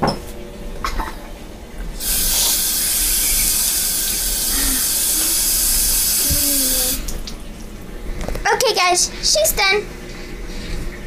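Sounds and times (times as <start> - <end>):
tap running into sink: 5.0 - 7.3.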